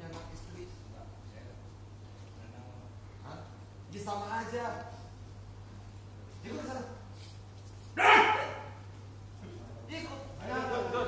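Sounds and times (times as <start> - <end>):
steady low hum: 0.0 - 11.0
bark-like vocal outburst: 8.0 - 8.8.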